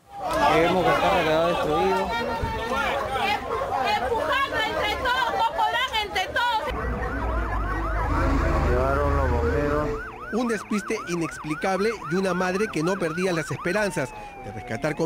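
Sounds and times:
people's raised voices: 0:00.1 - 0:10.1
emergency vehicle siren wailing: 0:00.1 - 0:15.0.

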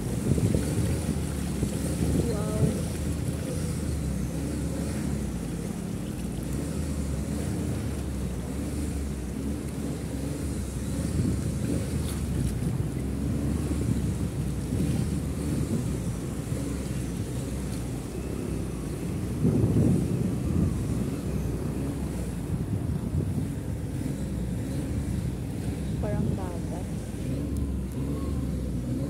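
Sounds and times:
floodwater rushing across street: 0:00.0 - 0:29.0
wind buffeting microphone: 0:00.0 - 0:29.0.

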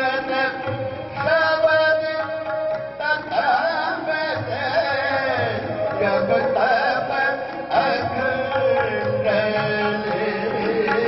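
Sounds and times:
harmonium: 0:00.0 - 0:11.0.

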